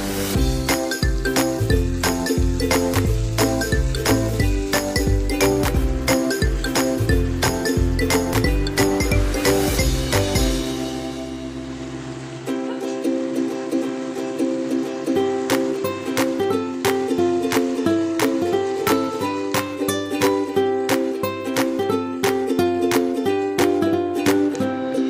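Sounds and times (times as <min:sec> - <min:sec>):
light regular beat: 0:00.0 - 0:11.0
plucked ukulele tune: 0:00.2 - 0:25.0.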